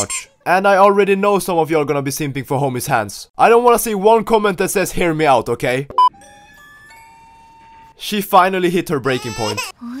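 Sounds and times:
person narrating: 0.0s - 1.7s
bell-like chime notes: 6.2s - 8.0s.

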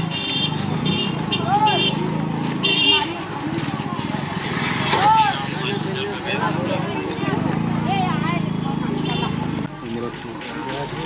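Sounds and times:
crowd talking: 0.0s - 11.0s
motor vehicle passing: 0.6s - 11.0s.

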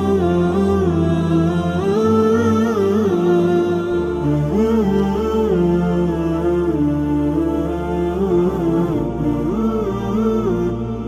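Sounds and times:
low steady drone: 0.0s - 11.0s
person humming long notes: 0.0s - 11.0s.

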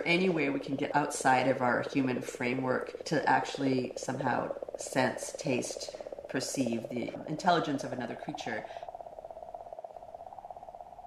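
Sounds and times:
faint fluttering drone: 0.0s - 11.0s.

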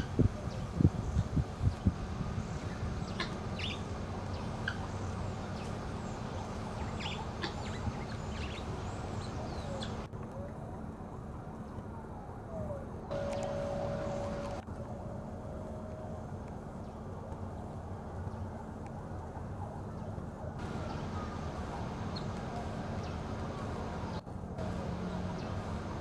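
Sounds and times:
steady low hum: 0.0s - 26.0s
distant siren wailing: 2.8s - 16.6s, 17.8s - 26.0s.

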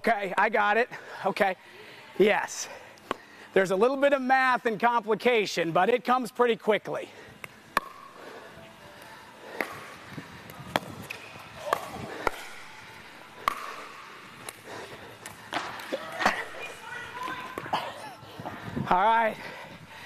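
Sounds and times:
paddles striking plastic ball: 7.7s - 8.1s.

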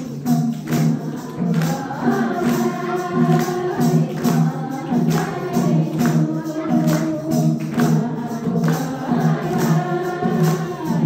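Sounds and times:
hand percussion beat: 0.0s - 11.0s
women singing devotional song: 0.0s - 11.0s.

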